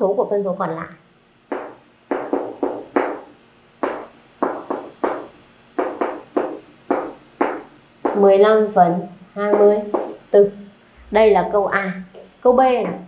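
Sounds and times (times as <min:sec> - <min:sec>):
chalk writing on chalkboard: 0:01.5 - 0:08.3, 0:09.5 - 0:10.2.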